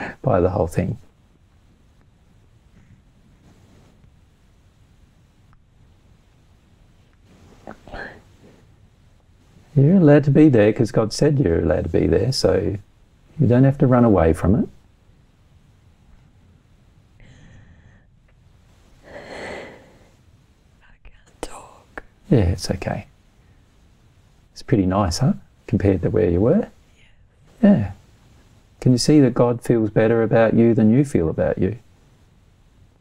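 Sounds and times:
woman sniffing: 7.6s - 8.6s
woman whispering: 7.7s - 8.3s, 20.8s - 22.1s.

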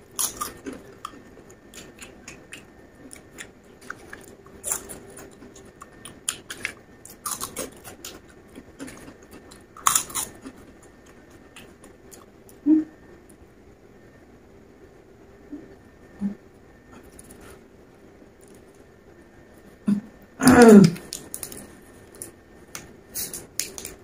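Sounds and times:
crunching and chewing chips: 0.0s - 12.6s, 20.6s - 24.0s.

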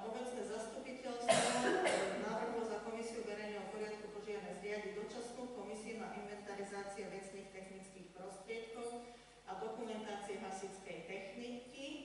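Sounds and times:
person coughing: 1.2s - 2.3s.

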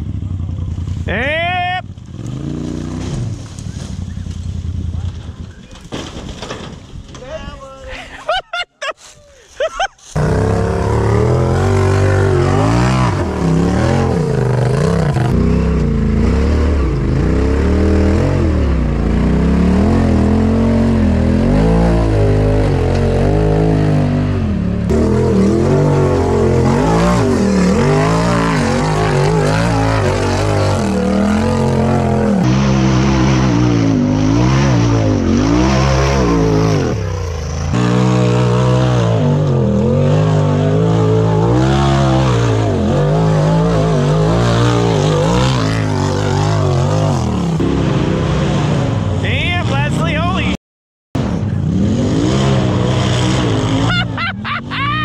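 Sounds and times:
off-road engines revving: 0.0s - 8.3s, 10.0s - 50.6s, 51.2s - 55.0s.

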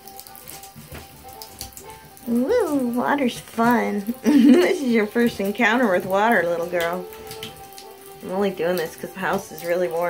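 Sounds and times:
tap water running into tub: 0.0s - 10.0s.

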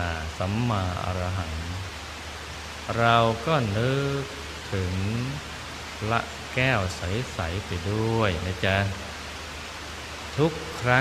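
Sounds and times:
man speaking: 0.0s - 1.8s, 2.9s - 5.4s, 6.0s - 9.0s, 10.4s - 11.0s
low steady hum: 0.0s - 11.0s
rain falling: 0.0s - 11.0s.

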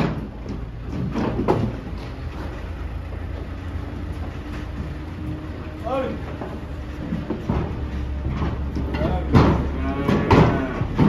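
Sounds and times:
hooves knocking on metal deck: 0.0s - 11.0s
steady low rumble: 1.7s - 10.0s.

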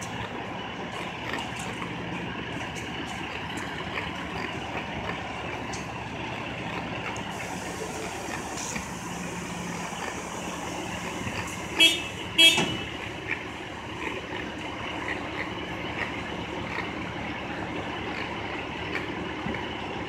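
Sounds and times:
city street traffic rumble: 0.0s - 20.0s
vehicle horn toots: 11.7s - 13.1s.

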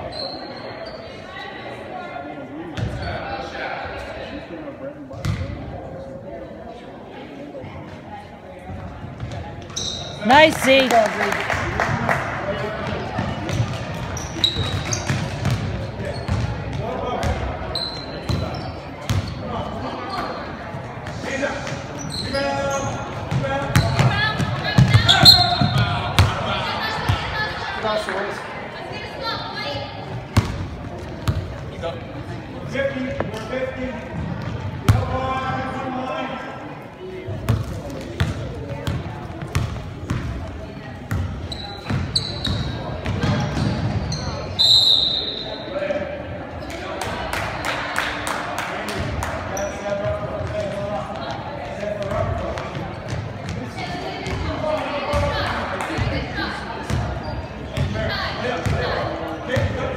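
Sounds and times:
ball bouncing on hardwood court: 5.2s - 5.4s, 12.8s - 17.5s, 19.1s - 19.3s, 23.3s - 26.4s, 37.4s - 40.4s
voices calling out in hall: 9.4s - 59.9s.

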